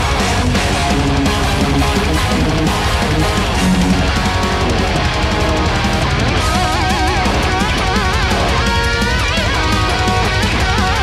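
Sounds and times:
bass guitar: 0:00.0 - 0:11.0
drums: 0:00.0 - 0:11.0
electric guitars playing metal lead: 0:00.0 - 0:11.0.

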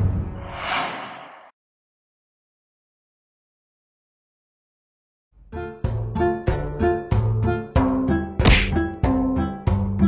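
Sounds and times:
background music: 0:05.4 - 0:10.0
loud sharp whack: 0:08.4 - 0:08.9.

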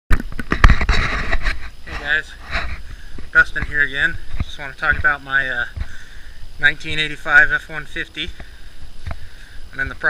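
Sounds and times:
microphone handling knocks and rustles: 0:00.1 - 0:06.0, 0:08.3 - 0:09.3.

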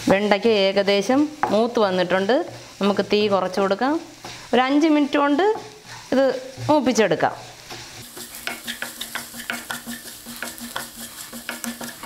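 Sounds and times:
okra sizzling in a pan: 0:00.0 - 0:12.0
wooden spatula scraping a pan: 0:05.3 - 0:12.0.

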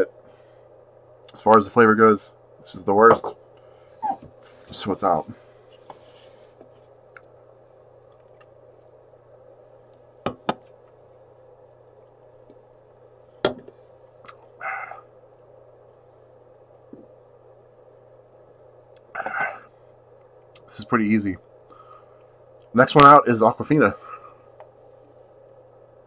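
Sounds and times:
low steady hum: 0:00.0 - 0:26.0.

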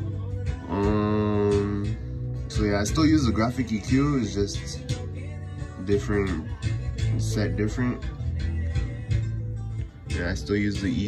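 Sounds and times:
electric bass line: 0:00.0 - 0:11.0.

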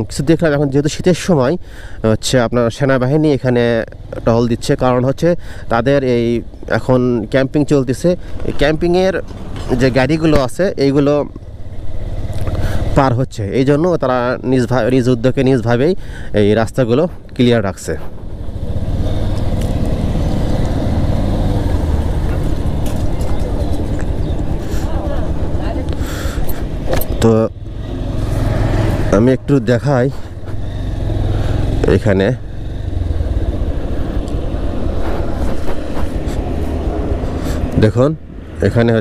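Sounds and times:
motorcycle engine rumble: 0:03.3 - 0:39.0.

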